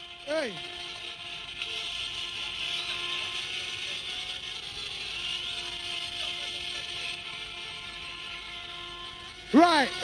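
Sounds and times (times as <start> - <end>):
large crowd noise: 0.0 - 10.0.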